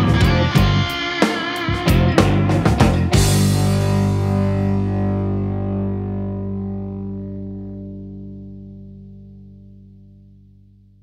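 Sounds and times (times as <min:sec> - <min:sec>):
electric guitar chord ringing: 0:00.0 - 0:10.6.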